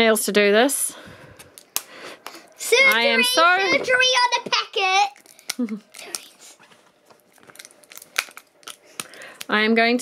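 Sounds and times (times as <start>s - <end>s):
packet rustling: 5.0s - 9.6s
sharp clicks of packet: 7.4s - 9.6s.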